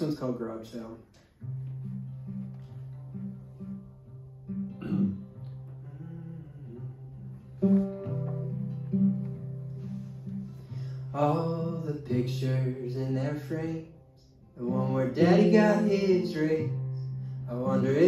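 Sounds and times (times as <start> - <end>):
acoustic guitar playing: 1.2 - 18.0.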